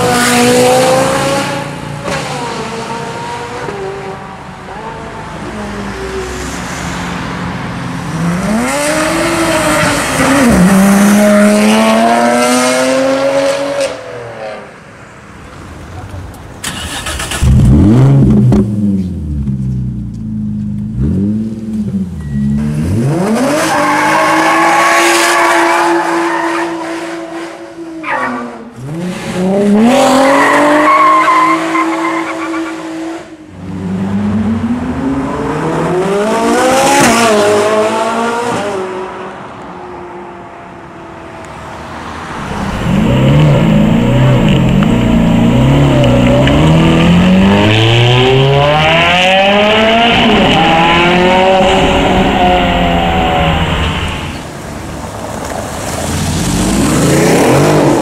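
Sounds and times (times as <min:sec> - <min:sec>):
sports car engines accelerating: 0:00.0 - 0:14.6, 0:16.1 - 0:58.0.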